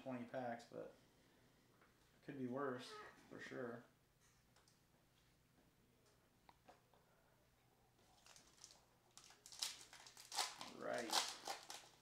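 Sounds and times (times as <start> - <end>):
foil wrapper crinkling: 8.2 - 12.0.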